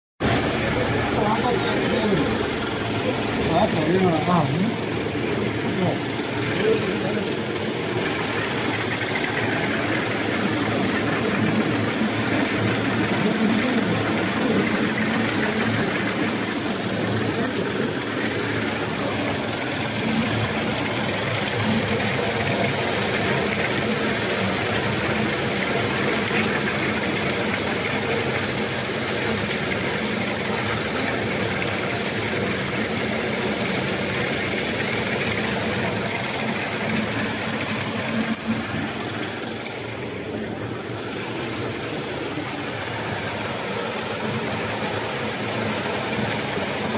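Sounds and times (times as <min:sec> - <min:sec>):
machine running: 0:00.2 - 0:46.9.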